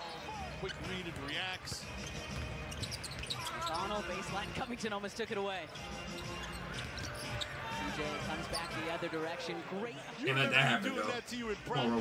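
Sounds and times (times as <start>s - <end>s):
crowd murmuring in a large hall: 7.2s - 12.0s.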